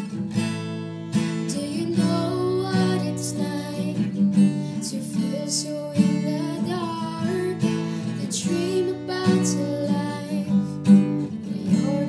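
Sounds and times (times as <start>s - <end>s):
acoustic guitar strumming: 0.0s - 12.0s
woman singing: 1.3s - 12.0s.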